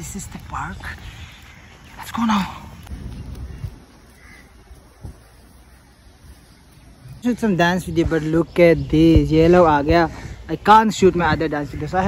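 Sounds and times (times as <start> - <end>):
faint bird call: 0.8 - 7.2.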